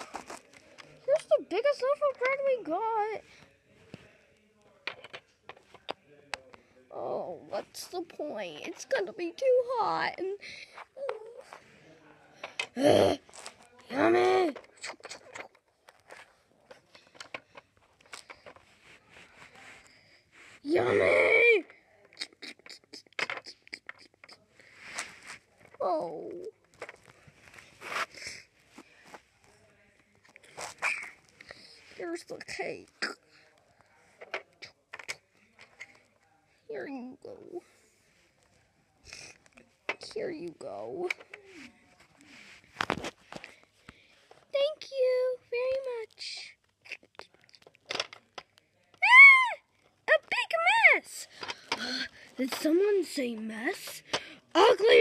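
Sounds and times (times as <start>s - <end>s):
plastic toy pieces clicking: 16.9s - 18.6s, 22.2s - 24.4s
child making play noises: 20.6s - 24.4s, 25.8s - 26.5s, 49.0s - 55.0s
child squealing: 49.0s - 49.6s.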